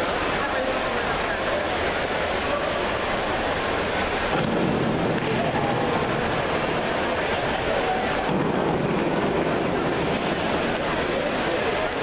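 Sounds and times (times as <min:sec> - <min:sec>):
water noise: 0:00.0 - 0:12.0
echoing hall background: 0:03.6 - 0:12.0.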